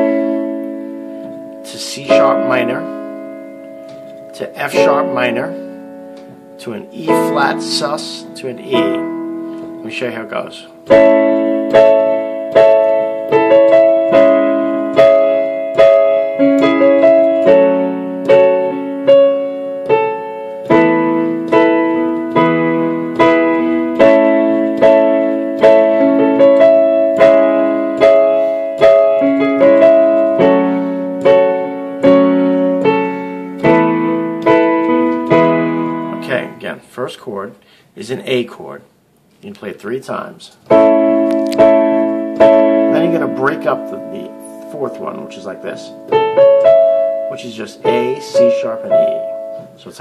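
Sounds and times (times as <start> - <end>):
piano block chords: 0.0 - 37.0, 39.8 - 50.0.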